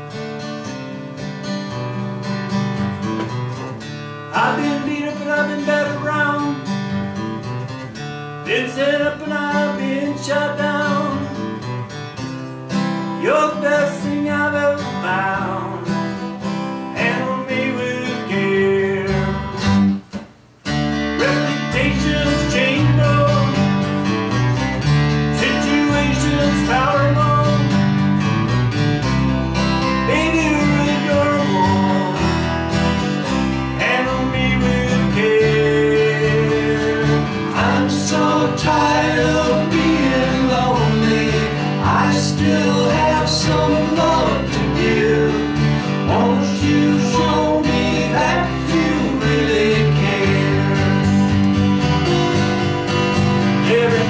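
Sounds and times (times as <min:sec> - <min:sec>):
acoustic guitars strummed: 0:00.0 - 0:54.0
singing: 0:33.8 - 0:51.1.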